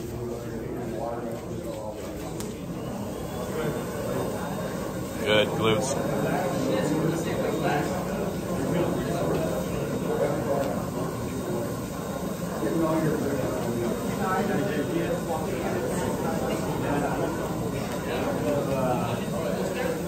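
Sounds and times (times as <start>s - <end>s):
chatter of many people: 0.0s - 20.0s.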